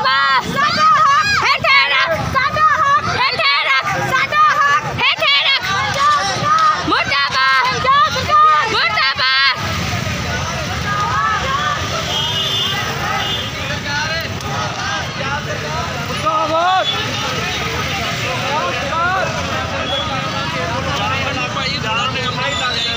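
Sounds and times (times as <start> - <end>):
crowd talking and calling out: 0.0 - 22.9
street traffic rumble: 0.0 - 22.9.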